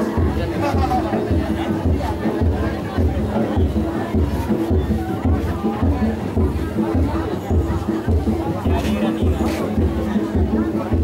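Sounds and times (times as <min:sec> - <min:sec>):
crowd chattering: 0:00.0 - 0:11.0
deep drum beating: 0:00.0 - 0:11.0.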